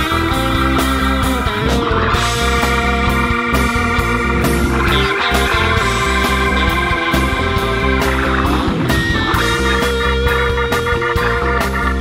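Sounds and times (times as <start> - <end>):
electric guitar lines: 0.0 - 12.0
rock band playing: 0.0 - 12.0.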